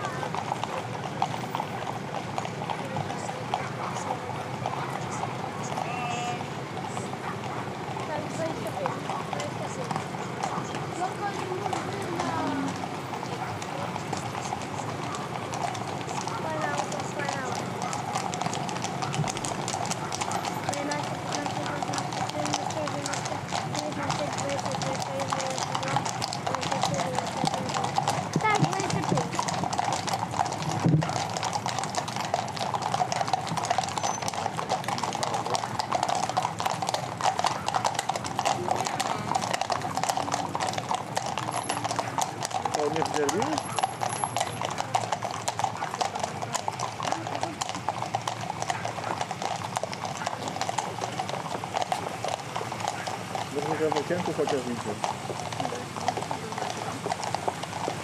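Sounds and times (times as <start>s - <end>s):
horse hooves clip-clopping on asphalt: 0.0s - 58.0s.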